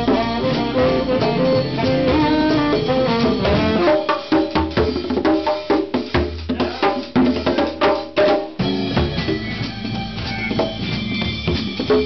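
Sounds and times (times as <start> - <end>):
congas played by hand: 0.0 - 12.0
jazz combo playing: 0.0 - 12.0.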